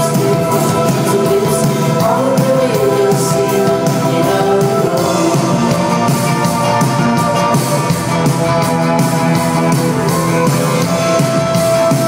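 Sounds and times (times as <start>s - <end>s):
rock band playing instrumental: 0.0s - 12.0s.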